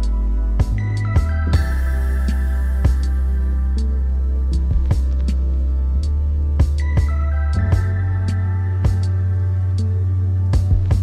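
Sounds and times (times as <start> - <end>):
sharp beat: 0.0 - 5.4, 6.0 - 9.9, 10.6 - 11.0
deep bass with held tones: 0.0 - 11.0.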